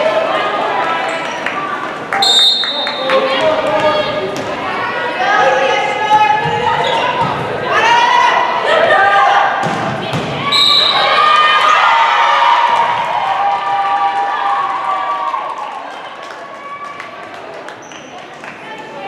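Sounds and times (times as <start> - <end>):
high-pitched shouts and cheers: 10.4 - 17.2.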